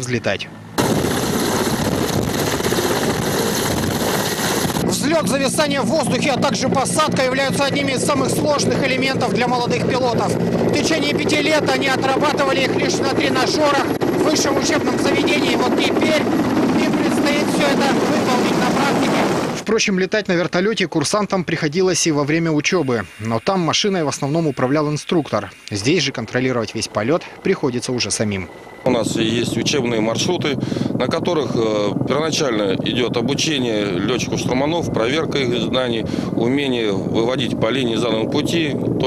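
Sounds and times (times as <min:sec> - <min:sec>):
helicopter turbine engines and rotors: 0:00.0 - 0:39.0.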